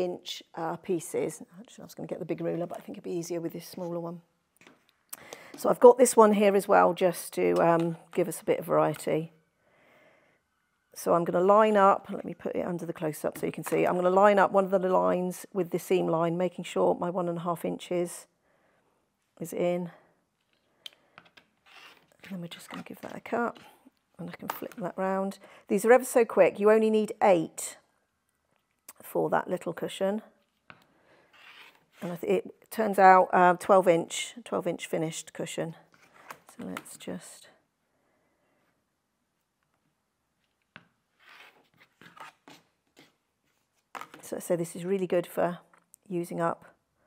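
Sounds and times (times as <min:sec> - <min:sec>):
blade scraping through fabric: 0:21.6 - 0:23.8, 0:31.3 - 0:32.1, 0:41.2 - 0:43.1.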